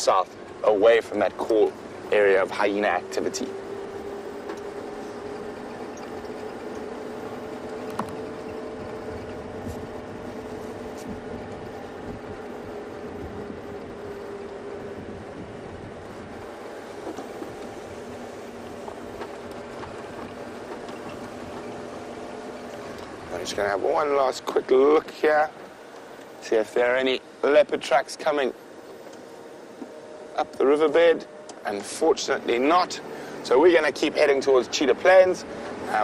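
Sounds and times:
road noise: 0:00.0 - 0:36.0
vehicle engine droning: 0:00.0 - 0:36.0.

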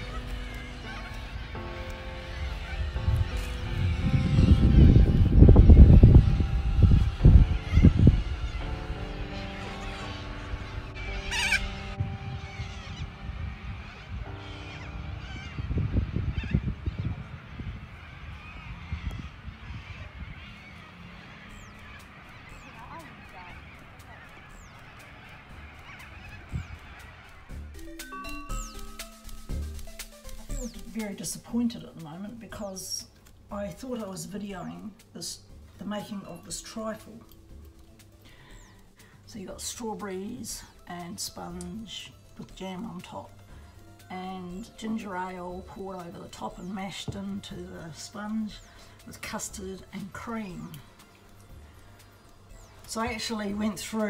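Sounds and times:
loud low rumbling bursts: 0:00.0 - 0:24.9
waterbirds honking and calling: 0:00.0 - 0:54.0
small bird chirps: 0:18.4 - 0:31.0, 0:37.3 - 0:39.0.

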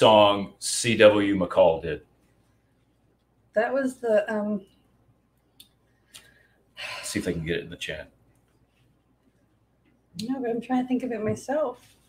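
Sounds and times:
woman speaking: 0:03.6 - 0:04.7, 0:10.2 - 0:11.9
soft breath sounds: 0:05.8 - 0:07.3.

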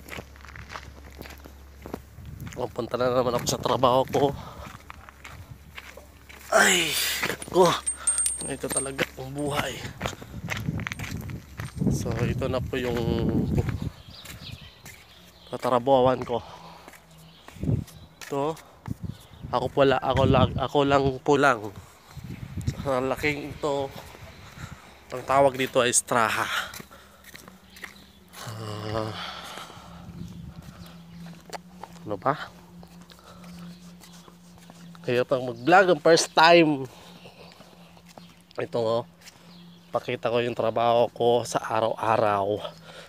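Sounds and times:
footsteps and scuffing: 0:00.0 - 0:20.4, 0:23.8 - 0:28.5, 0:30.2 - 0:35.8, 0:37.2 - 0:39.6
man's voice: 0:06.5 - 0:10.1
steady low hum: 0:20.6 - 0:39.9.

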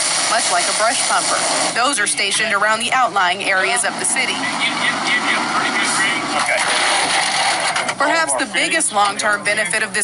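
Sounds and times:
water nozzle spraying: 0:00.0 - 0:01.9.

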